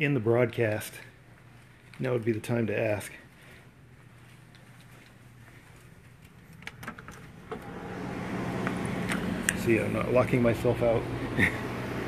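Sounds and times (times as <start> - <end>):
steady hum: 2.6 - 12.0.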